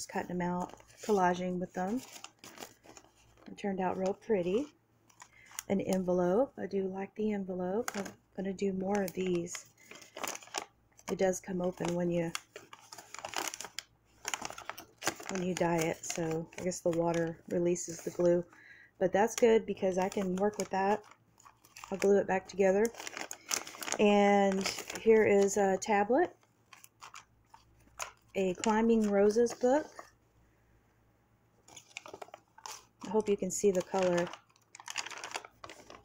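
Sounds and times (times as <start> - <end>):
paper envelope rustling: 0.2 - 5.7, 7.8 - 8.2, 8.8 - 18.4, 19.3 - 25.6, 26.7 - 30.2, 31.7 - 36.0.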